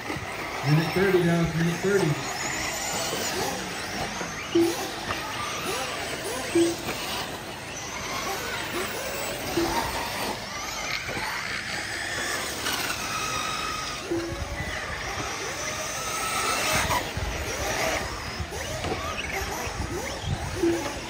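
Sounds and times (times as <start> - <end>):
small engines buzzing at high revs: 0.0 - 21.0.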